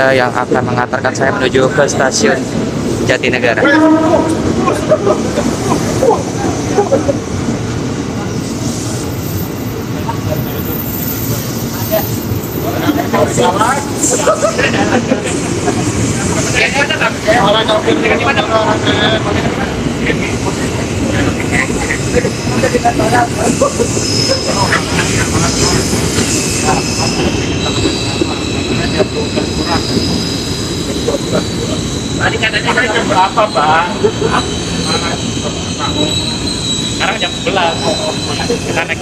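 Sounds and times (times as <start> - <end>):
electric train rumbling: 0.0 - 39.0.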